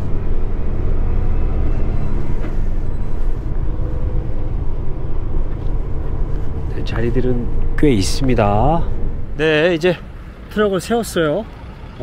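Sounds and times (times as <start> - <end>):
diesel truck engine rumble: 0.0 - 12.0.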